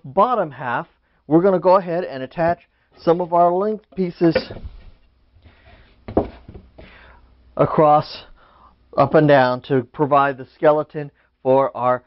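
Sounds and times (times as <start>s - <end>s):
wooden boards knocking: 4.3s - 5.0s, 6.1s - 6.9s.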